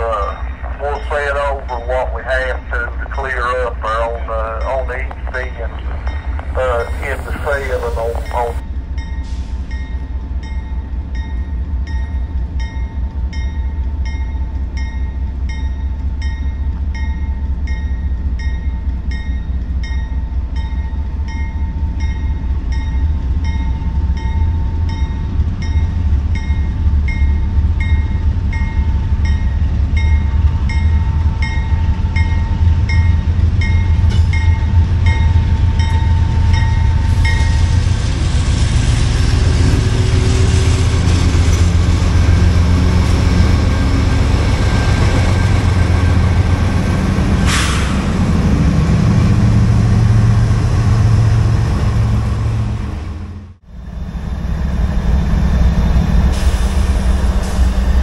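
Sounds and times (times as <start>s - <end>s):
locomotive bell ringing: 0.0s - 37.8s
diesel locomotive engine rumble: 0.0s - 58.0s.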